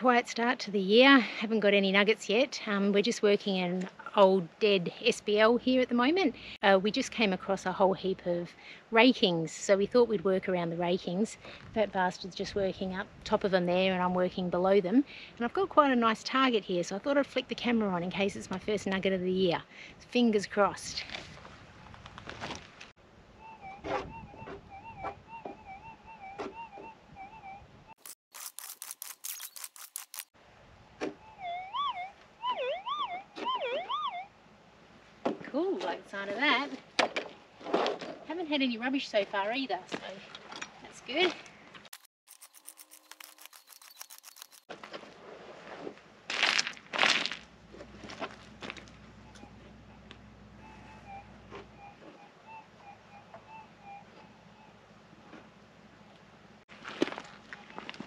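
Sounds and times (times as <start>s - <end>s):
metal detector warbling tone: 23.4s - 27.7s, 31.2s - 34.3s, 49.2s - 54.8s
metal detector blips: 28.0s - 30.3s, 42.0s - 44.6s
pick scraping stony ground: 28.0s - 30.3s, 41.1s - 49.0s, 56.7s - 58.0s.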